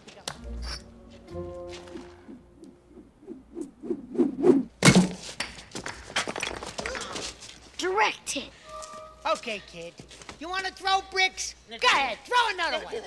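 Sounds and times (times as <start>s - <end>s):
film score music: 0.3s - 3.9s, 8.5s - 9.4s.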